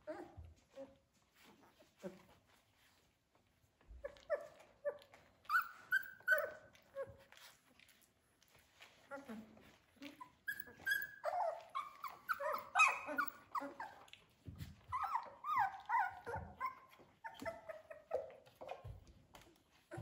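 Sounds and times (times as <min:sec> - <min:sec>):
puppies whining and yipping: 0:00.0 - 0:02.5, 0:03.8 - 0:07.7, 0:08.8 - 0:20.0.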